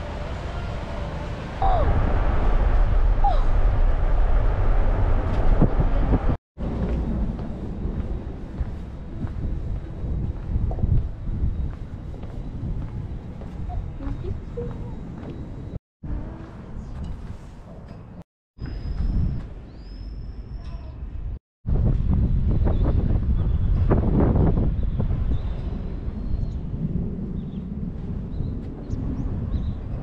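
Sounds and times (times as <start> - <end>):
wind rumbling on microphone: 0.0 - 30.0.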